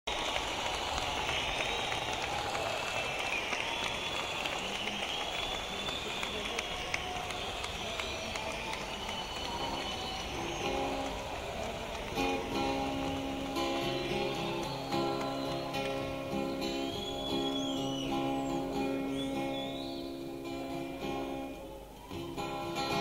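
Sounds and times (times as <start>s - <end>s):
scattered clapping: 0.0s - 19.4s
whistles from audience: 0.1s - 20.3s
audience murmuring and calling out: 0.1s - 23.0s.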